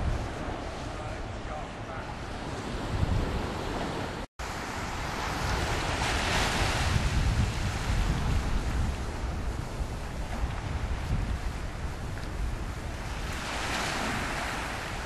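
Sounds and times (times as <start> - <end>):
waves washing onto beach: 0.0 - 15.0
wind buffeting microphone: 0.0 - 15.0.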